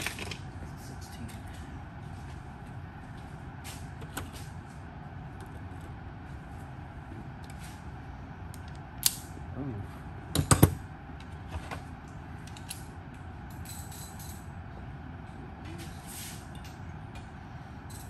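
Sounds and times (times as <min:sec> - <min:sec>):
low background hum: 0:00.0 - 0:18.0.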